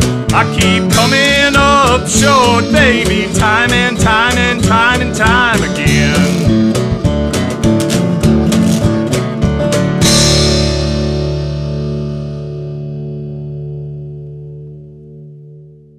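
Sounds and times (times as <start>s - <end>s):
country blues band hits: 0.0s - 15.2s
guitar chord ringing: 0.0s - 15.9s.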